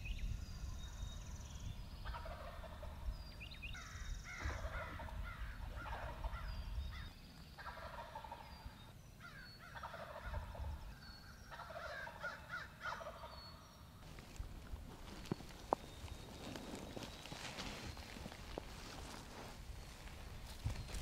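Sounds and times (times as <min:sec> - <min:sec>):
turkey gobbling: 0:02.1 - 0:03.0, 0:05.8 - 0:06.4, 0:07.6 - 0:08.5, 0:09.7 - 0:10.5, 0:11.5 - 0:13.3.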